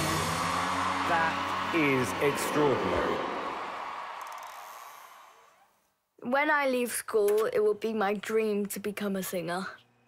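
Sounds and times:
audience applauding and cheering: 0:00.0 - 0:05.8.

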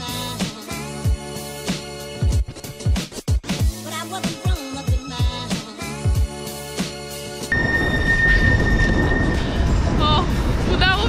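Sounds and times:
music: 0:00.0 - 0:11.0
high squeal: 0:07.5 - 0:10.1
tram rumbling: 0:07.5 - 0:11.0
wind buffeting microphone: 0:07.5 - 0:11.0
woman's voice: 0:10.0 - 0:11.0.

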